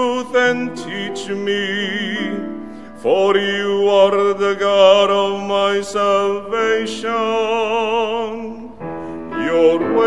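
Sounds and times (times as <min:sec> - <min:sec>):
man singing with vibrato: 0:00.0 - 0:10.0
piano accompaniment: 0:00.0 - 0:10.0.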